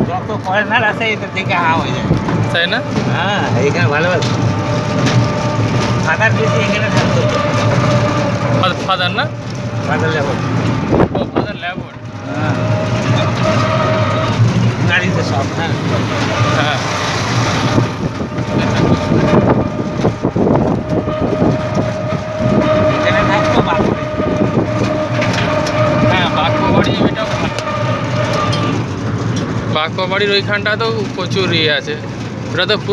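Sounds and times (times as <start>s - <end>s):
steady whine: 0.0s - 32.5s
indistinct voices: 0.0s - 32.9s
vehicle rumbling on road: 0.0s - 32.9s.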